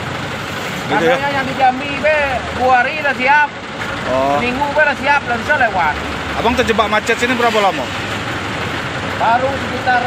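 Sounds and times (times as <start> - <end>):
traffic rumble: 0.0 - 10.0
truck engines idling: 0.0 - 10.0
man talking: 0.9 - 8.0.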